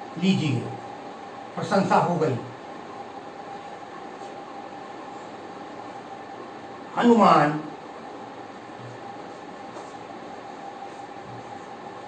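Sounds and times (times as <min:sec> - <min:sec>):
faint steady hum: 0:00.0 - 0:12.0
room noise hiss: 0:00.0 - 0:12.0.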